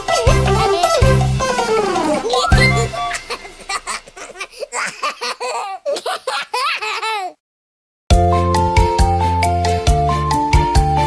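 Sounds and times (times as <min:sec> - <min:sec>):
baby giggling: 0:00.6 - 0:07.4.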